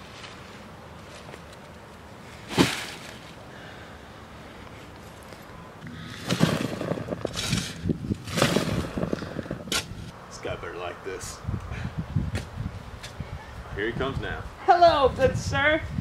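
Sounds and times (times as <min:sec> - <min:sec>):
shovel digging into soil: 0:06.1 - 0:09.1.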